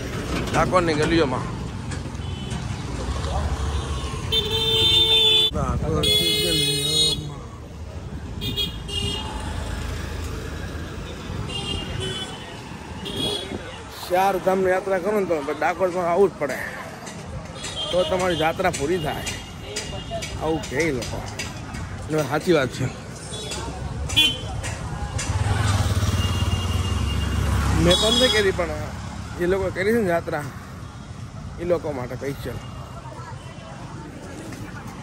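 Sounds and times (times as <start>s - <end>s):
street traffic hum: 0.0s - 35.0s
vehicle engine rumbling: 0.0s - 35.0s.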